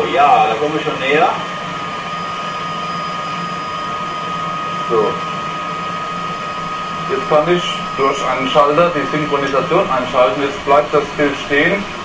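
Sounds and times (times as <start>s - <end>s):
motor spinning with high whine: 0.0s - 12.0s.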